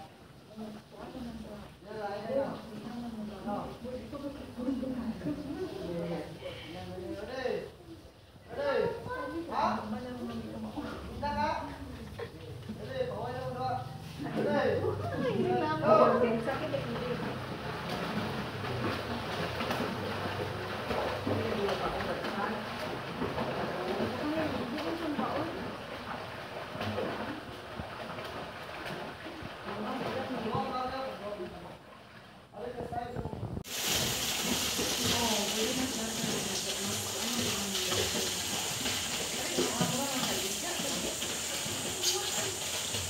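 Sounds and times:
swimmers splashing in a pool: 0:12.7 - 0:32.9, 0:33.6 - 0:43.0.

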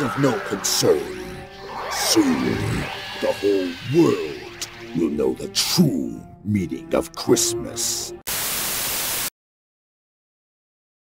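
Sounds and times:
static hiss: 0:08.3 - 0:09.3.

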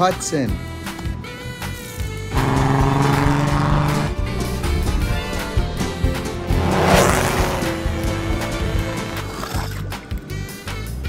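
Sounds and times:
background music: 0:00.0 - 0:11.0
race car speeding past: 0:02.4 - 0:09.2.

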